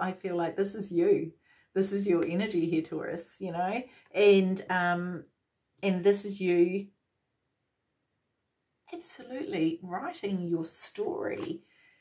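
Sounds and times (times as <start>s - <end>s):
woman talking: 0.0s - 5.2s, 5.8s - 6.9s, 8.9s - 11.7s.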